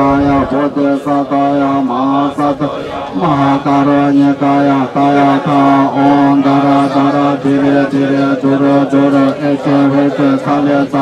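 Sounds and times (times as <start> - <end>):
monks chanting on a low note: 0.0 - 11.0.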